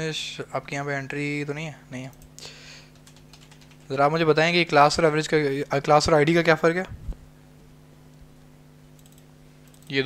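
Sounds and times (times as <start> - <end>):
low steady hum: 0.0 - 10.0
faint keyboard keystrokes: 2.9 - 3.9.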